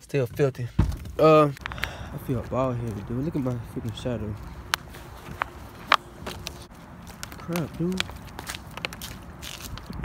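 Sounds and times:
footsteps on concrete: 0.8 - 10.0.

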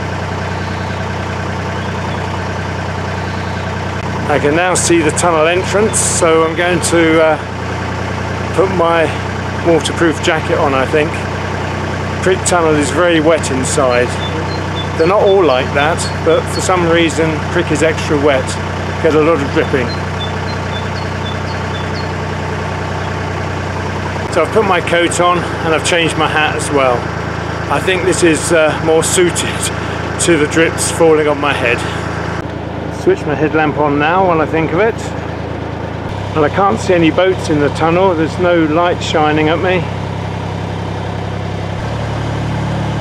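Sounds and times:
boat diesel engine droning: 0.0 - 43.0
small bird chirping: 0.5 - 1.1, 1.7 - 2.4, 3.2 - 3.8, 13.3 - 17.2, 19.4 - 22.2.

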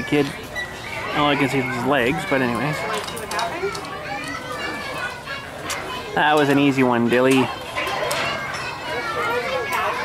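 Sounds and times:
children and people chattering: 0.0 - 10.0.

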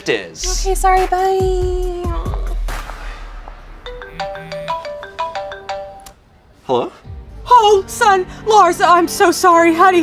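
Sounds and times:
phone ringtone melody: 3.8 - 6.2.

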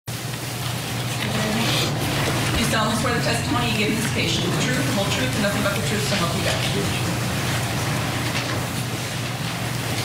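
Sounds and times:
low hum: 1.1 - 8.9.

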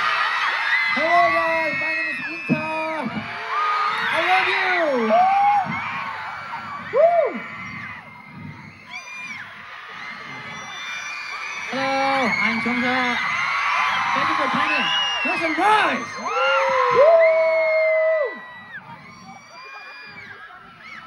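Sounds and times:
crowd cheering and screaming: 0.0 - 21.0
individual whoops and yells: 0.0 - 21.0
crowd murmur: 2.4 - 21.0.

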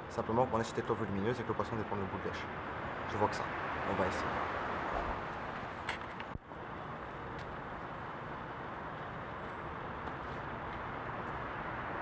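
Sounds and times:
motorway traffic rush: 0.0 - 12.0.

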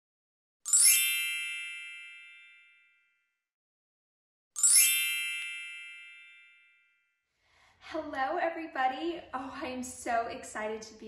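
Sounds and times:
magical sparkle chime: 0.7 - 2.9, 4.6 - 6.9.

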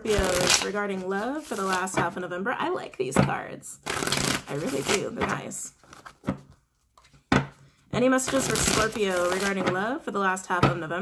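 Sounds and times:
cards being shuffled: 0.1 - 0.8, 1.4 - 2.0, 3.9 - 7.2, 8.3 - 9.8.

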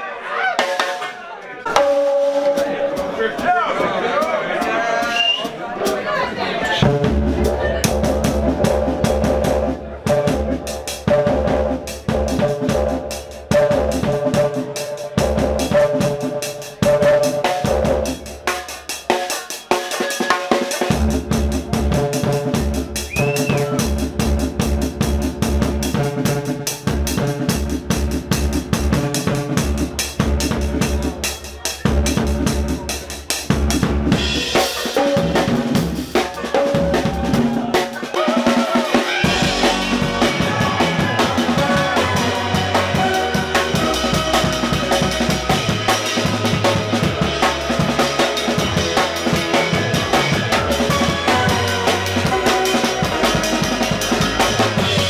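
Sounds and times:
fast drum kit groove: 0.5 - 55.0
deep bass line: 6.8 - 18.4, 20.9 - 31.3, 39.2 - 55.0.

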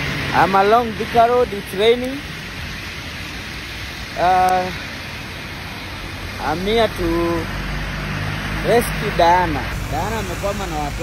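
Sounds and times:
steady rain hiss: 0.0 - 11.0
man speaking: 0.3 - 2.2, 4.2 - 4.8, 6.4 - 7.5, 8.6 - 11.0.

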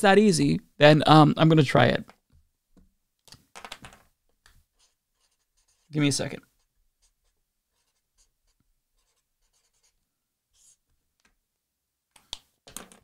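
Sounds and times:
pen scratching on paper: 4.6 - 10.9.

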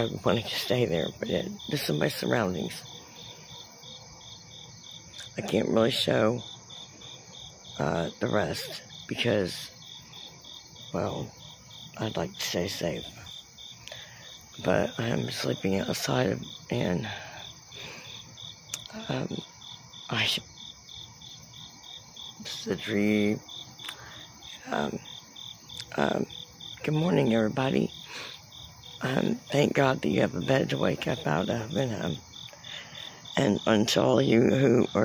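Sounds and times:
cricket chirping: 0.0 - 35.0.

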